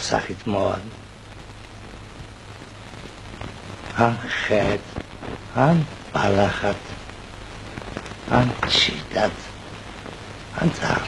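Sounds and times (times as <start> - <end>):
steady rain-like hiss: 0.0 - 11.0.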